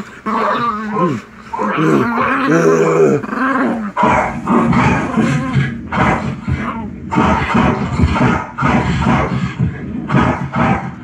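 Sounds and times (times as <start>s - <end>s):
dog growling and barking: 0.0s - 11.0s.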